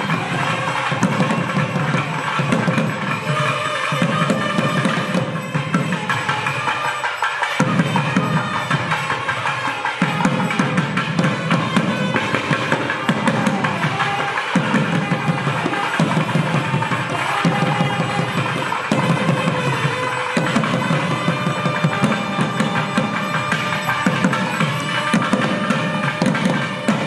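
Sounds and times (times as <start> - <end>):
drum beating dense rhythms: 0.0 - 27.0.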